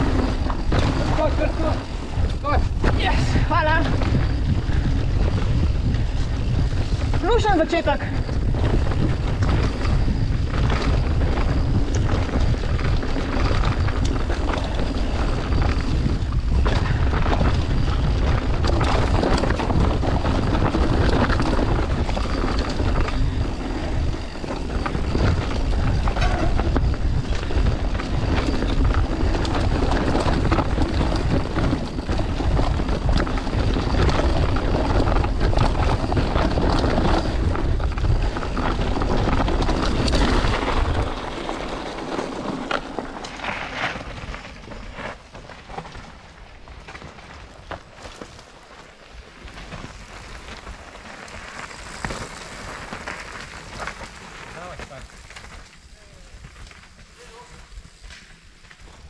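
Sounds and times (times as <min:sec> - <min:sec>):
bike tyre roar: 0:00.0 - 0:59.0
wind buffeting microphone: 0:00.0 - 0:59.0.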